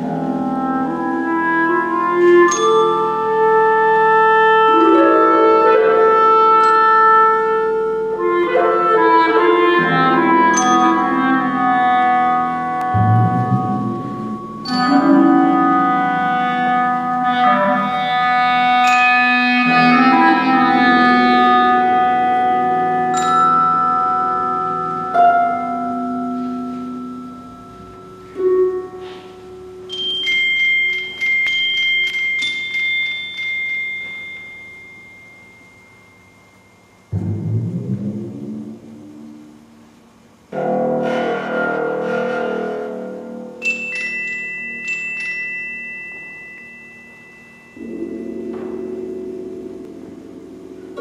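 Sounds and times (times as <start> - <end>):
clarinet long slow notes: 0.0 - 30.0
harp: 0.0 - 51.0
ringing percussion stroke: 10.4 - 21.0, 21.8 - 39.7, 40.5 - 51.0.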